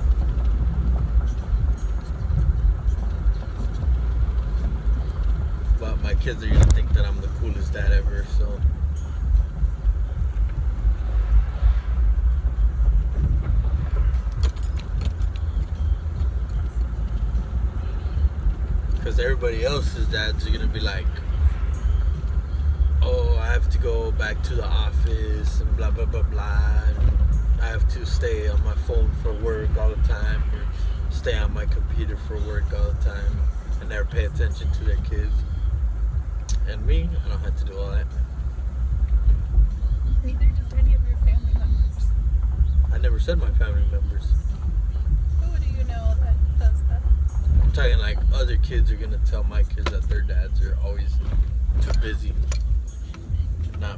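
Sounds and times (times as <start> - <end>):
car engine and tyre rumble: 0.0 - 53.9.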